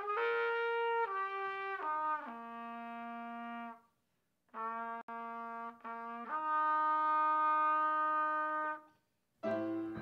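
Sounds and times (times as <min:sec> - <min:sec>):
trumpet holding long note: 0:00.0 - 0:03.8, 0:04.6 - 0:08.9.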